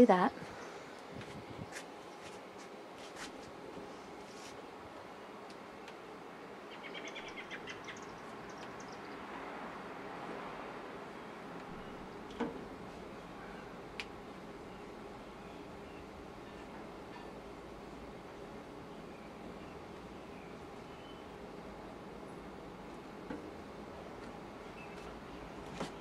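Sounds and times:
bird chirping: 6.7s - 9.3s, 18.9s - 21.3s.

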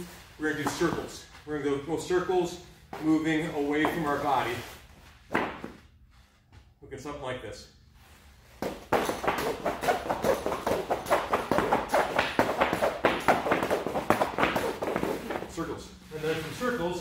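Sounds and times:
battle ropes slapping floor: 5.3s - 5.9s, 8.5s - 15.8s.

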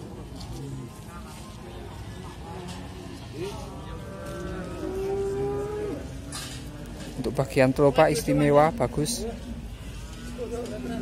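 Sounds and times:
cow mooing: 4.0s - 6.2s.

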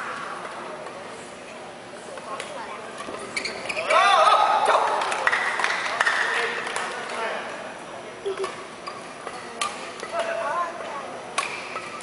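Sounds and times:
faint background chatter: 0.0s - 12.0s
brief squeak: 3.3s - 3.9s.

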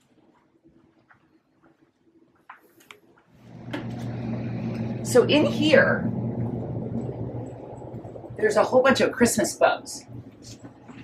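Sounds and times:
low mechanical hum: 3.4s - 11.0s.

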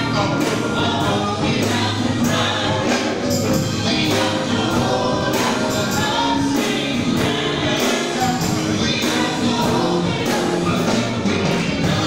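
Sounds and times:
band with steady beat: 0.0s - 12.0s
gospel group singing in harmony: 0.0s - 12.0s.

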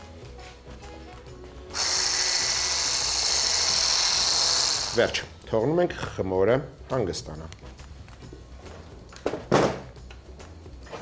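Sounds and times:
electric hand blender whirring: 1.7s - 5.2s.

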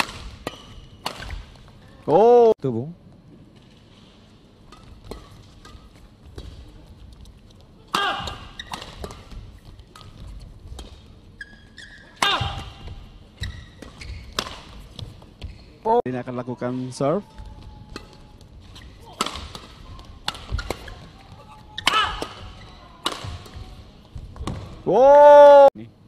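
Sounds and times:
rackets hitting shuttlecock: 0.0s - 1.6s, 4.7s - 6.7s, 12.1s - 15.1s, 17.9s - 24.8s.

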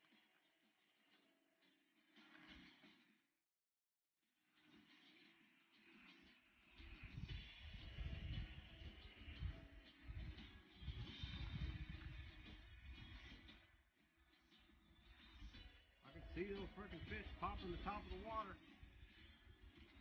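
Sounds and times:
wind buffeting microphone: 7.0s - 13.0s.

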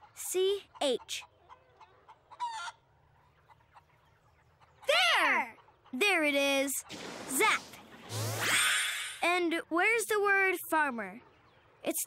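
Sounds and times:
cartoon chicken clucking: 0.0s - 9.4s.

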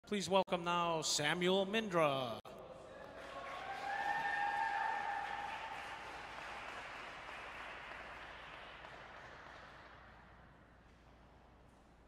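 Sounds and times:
long high cheer: 2.9s - 7.4s
crowd applauding: 2.9s - 10.3s.

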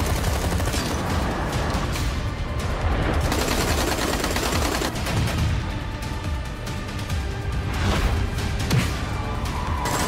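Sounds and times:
rapid automatic gunfire: 0.0s - 1.4s, 3.2s - 5.5s.

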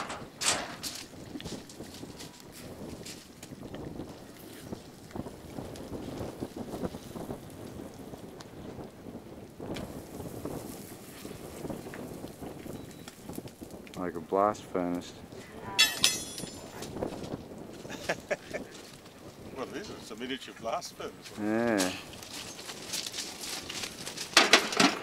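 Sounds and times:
thermite burning with rushing hiss: 1.0s - 15.5s, 16.4s - 24.5s.

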